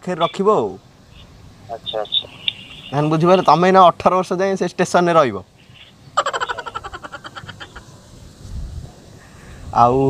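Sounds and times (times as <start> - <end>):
man laughing: 6.2 - 7.9.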